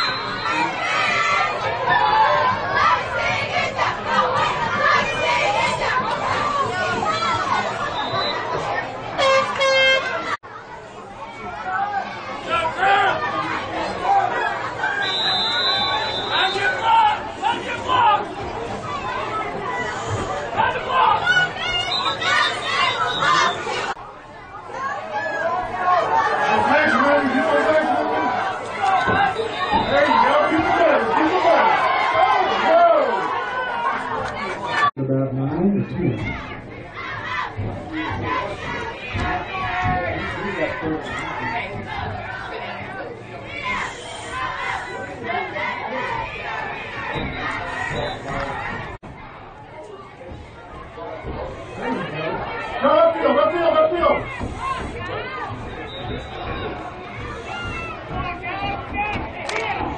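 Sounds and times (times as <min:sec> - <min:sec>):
crowd babble: 0:00.0 - 0:59.9.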